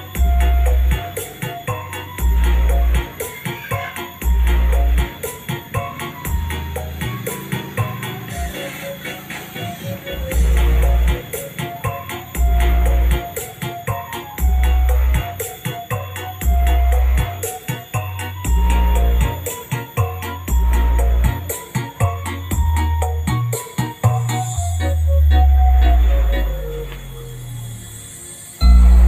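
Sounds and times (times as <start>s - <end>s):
deep bass notes: 0.0s - 1.2s, 2.0s - 3.1s, 4.2s - 5.2s, 6.2s - 7.2s, 9.8s - 11.3s, 12.3s - 13.3s, 14.4s - 15.4s, 16.3s - 17.4s, 18.0s - 21.5s, 24.1s - 27.6s, 28.6s - 29.0s
busy percussion: 0.0s - 27.9s.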